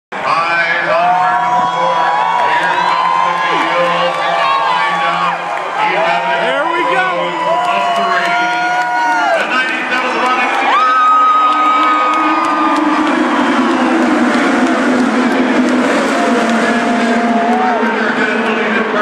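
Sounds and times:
crowd cheering: 0:00.1 - 0:19.0
race car engines passing: 0:00.2 - 0:19.0.

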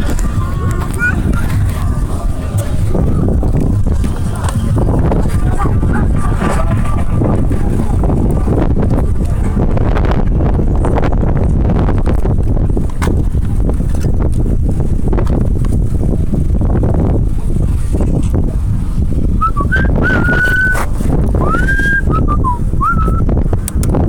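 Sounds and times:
wind buffeting microphone: 0:00.0 - 0:24.0
person whistling: 0:19.4 - 0:20.8, 0:21.4 - 0:23.3.

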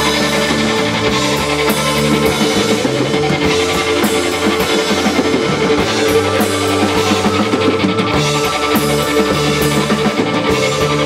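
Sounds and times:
bass guitar: 0:00.0 - 0:11.0
distorted electric guitar chords: 0:00.0 - 0:11.0
drum kit with cymbals: 0:00.0 - 0:11.0.

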